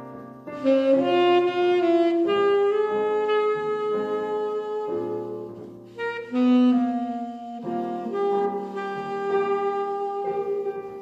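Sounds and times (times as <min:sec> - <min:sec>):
piano accompaniment: 0:00.0 - 0:11.0
tenor saxophone melody: 0:00.0 - 0:11.0.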